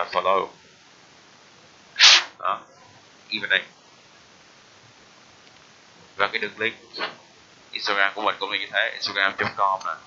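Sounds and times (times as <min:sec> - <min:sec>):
sharp burst of breath: 0:02.0 - 0:02.4.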